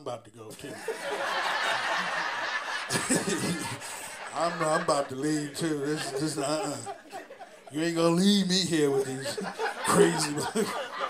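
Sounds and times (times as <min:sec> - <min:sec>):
group of people laughing: 0:00.5 - 0:11.0.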